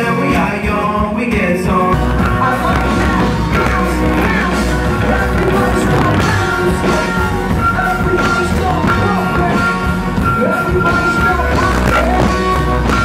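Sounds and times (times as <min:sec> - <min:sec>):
live band with singer: 0:00.0 - 0:13.0
deep bass: 0:01.7 - 0:13.0.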